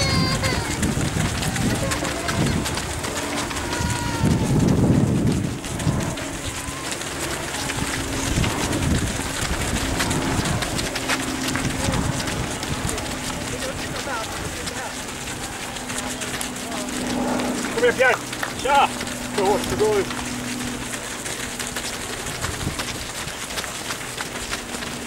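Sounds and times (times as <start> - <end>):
runners' footsteps on gravel: 0.0 - 25.0
voices murmuring: 0.0 - 25.0.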